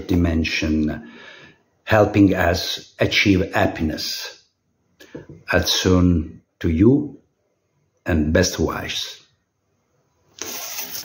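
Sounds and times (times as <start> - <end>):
person speaking: 0.0 - 1.1, 5.2 - 7.2
rustling noise: 10.3 - 11.0.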